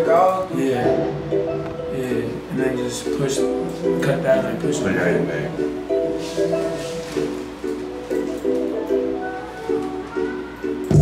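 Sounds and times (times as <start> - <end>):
plucked-string beat melody: 0.0 - 11.0.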